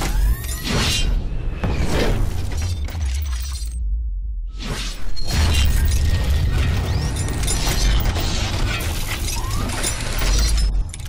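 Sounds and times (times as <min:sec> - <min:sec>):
deep bass drone: 0:03.8 - 0:04.6
shattering metallic hits: 0:05.2 - 0:11.0.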